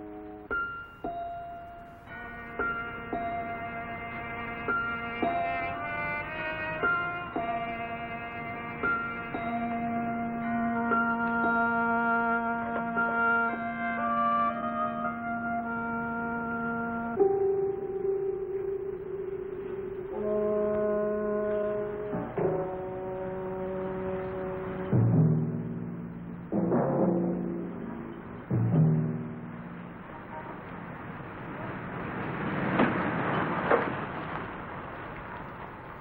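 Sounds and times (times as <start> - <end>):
orchestral brass music: 1.9 - 30.6.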